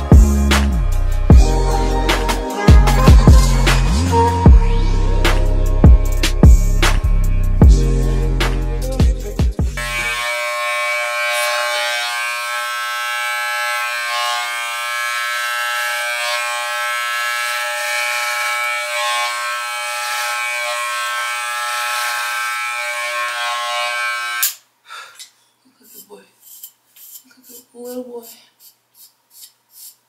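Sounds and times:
electric hair clippers buzzing: 9.7 - 24.6.

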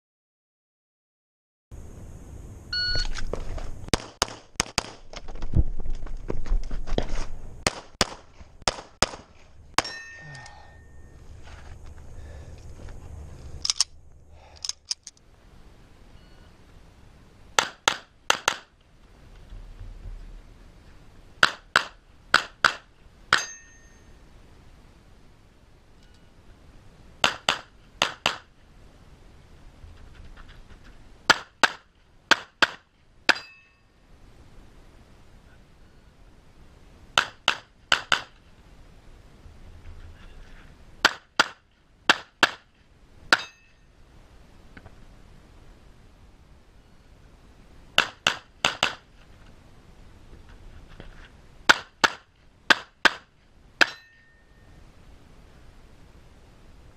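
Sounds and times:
pistol shots: 7.6 - 9.9.

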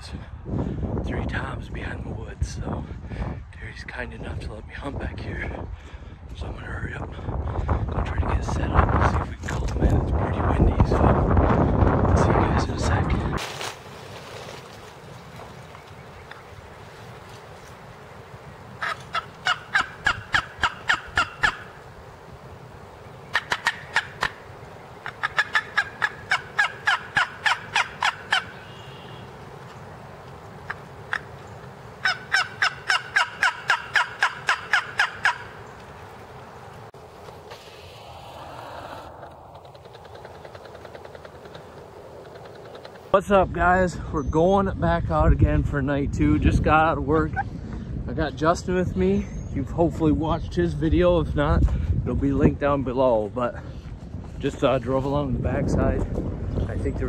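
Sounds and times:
turkey yelping: 18.7 - 22.1, 22.9 - 29.3, 30.6 - 35.8, 37.8 - 43.1
steady background rush: 36.3 - 43.1.

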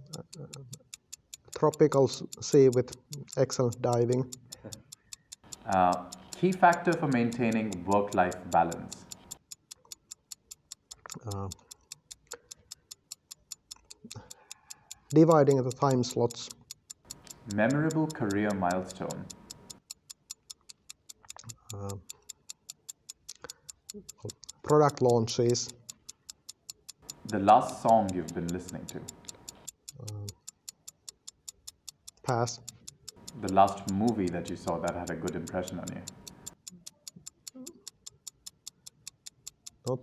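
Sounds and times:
fast timer ticking: 0.0 - 40.0
man saying uh: 1.6 - 4.8, 5.7 - 8.9, 11.2 - 11.6, 15.1 - 16.5, 17.5 - 19.3, 21.7 - 22.0, 24.7 - 25.7, 27.3 - 29.1, 30.0 - 30.3, 32.3 - 32.6, 33.4 - 36.1.

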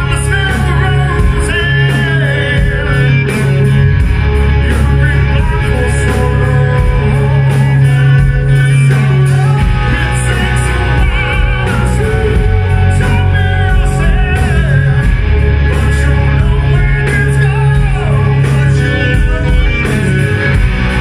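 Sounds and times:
bass guitar: 0.0 - 21.0
distorted electric guitars: 0.0 - 21.0
drums: 0.0 - 21.0
man singing lead vocals: 0.0 - 21.0.

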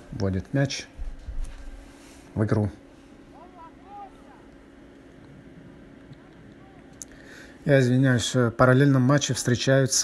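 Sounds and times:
steady low hum: 0.0 - 10.0
distant players shouting: 3.3 - 4.8, 5.5 - 7.0.

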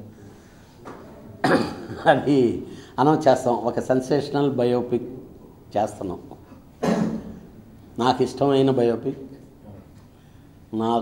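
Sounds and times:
man coughing: 1.4 - 2.3, 6.8 - 7.4.

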